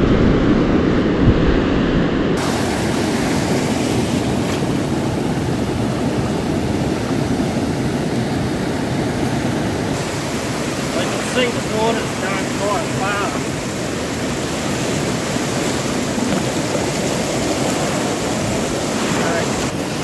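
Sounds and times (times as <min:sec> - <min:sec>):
ocean surf rushing: 0:00.0 - 0:20.0
wind on microphone: 0:00.0 - 0:20.0.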